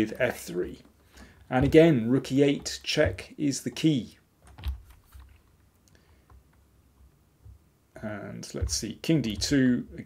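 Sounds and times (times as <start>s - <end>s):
computer keyboard taps: 8.6s - 9.6s.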